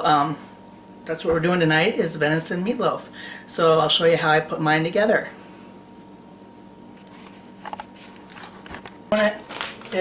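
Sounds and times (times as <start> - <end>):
plastic bag crinkling: 7.7 - 10.0.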